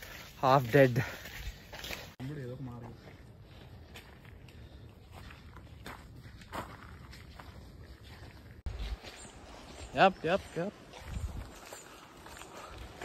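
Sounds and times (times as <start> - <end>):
footsteps on gravel: 0.0 - 13.0
person speaking: 0.3 - 1.2.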